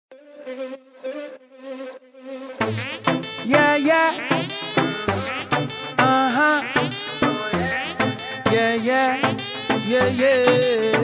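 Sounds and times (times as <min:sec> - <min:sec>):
buzzy synth note: 0:02.6 - 0:11.0.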